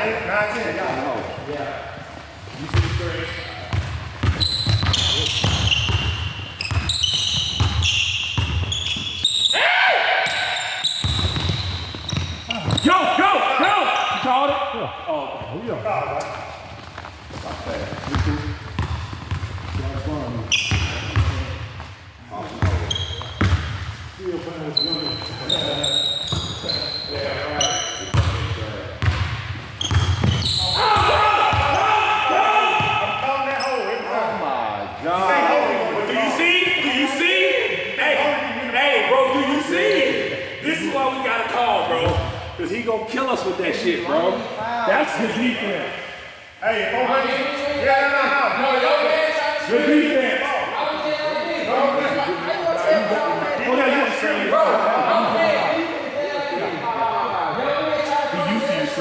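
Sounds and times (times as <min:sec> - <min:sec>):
basketball bouncing: 0:03.7 - 0:09.1, 0:11.0 - 0:12.9, 0:18.0 - 0:19.9, 0:22.6 - 0:23.9, 0:28.1 - 0:30.4
players shouting: 0:09.3 - 0:11.6, 0:30.4 - 0:33.3.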